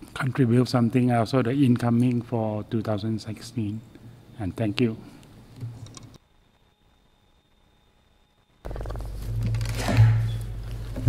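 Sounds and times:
low hum with rumbling noise: 0.0s - 11.0s.

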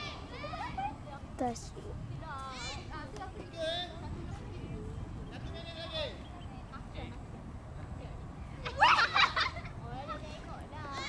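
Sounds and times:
child shouting: 0.0s - 0.8s.

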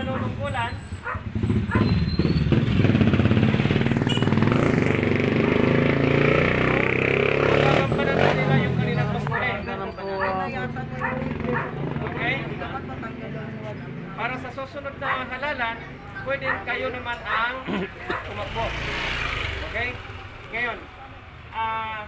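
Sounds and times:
man's voice: 0.0s - 0.8s, 7.5s - 18.8s
motorcycle engine running: 1.0s - 9.5s, 10.6s - 13.2s.

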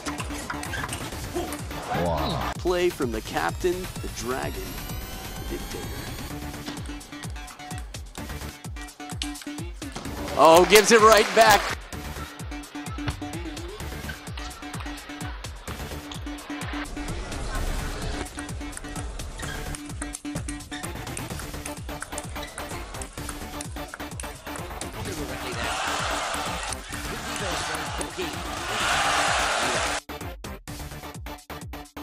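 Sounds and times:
background music: 0.0s - 32.0s
crowd cheering and applause: 10.0s - 12.8s, 24.4s - 30.0s.

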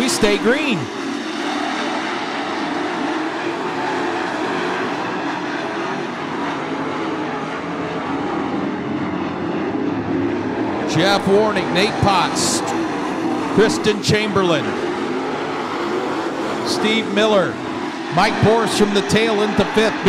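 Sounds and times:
race car engines droning: 0.0s - 20.0s.

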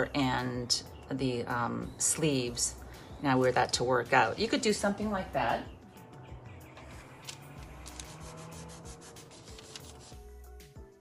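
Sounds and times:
hands rubbing paper towel: 7.8s - 10.2s.

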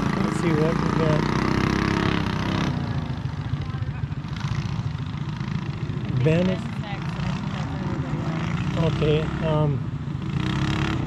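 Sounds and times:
small engines droning: 0.0s - 11.0s.

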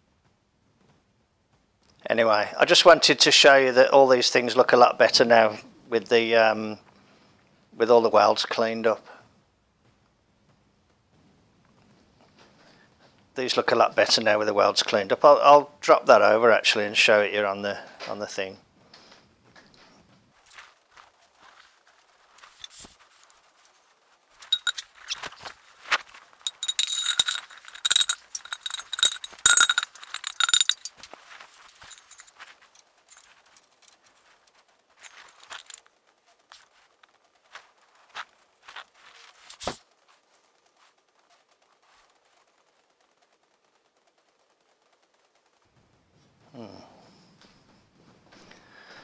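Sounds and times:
metal clinks: 24.4s - 25.5s, 26.1s - 34.4s, 35.0s - 35.9s.

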